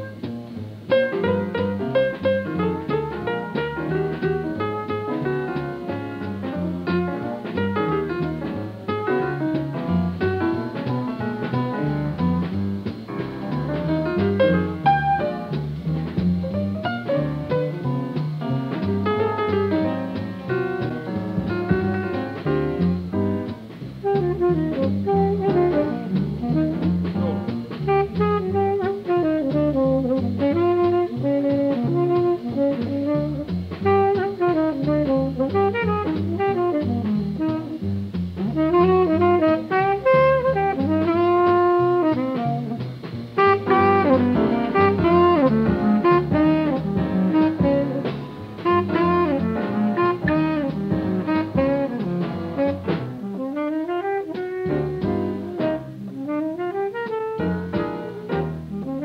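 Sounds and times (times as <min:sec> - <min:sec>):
double bass: 0:00.0 - 0:59.0
drums: 0:00.0 - 0:59.0
piano: 0:00.0 - 0:59.0
tenor saxophone: 0:24.0 - 0:37.8, 0:38.4 - 0:42.8, 0:43.4 - 0:59.0.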